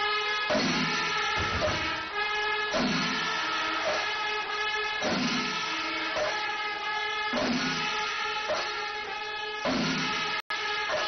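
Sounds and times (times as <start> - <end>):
brass horns blowing held notes: 0.0 - 11.0.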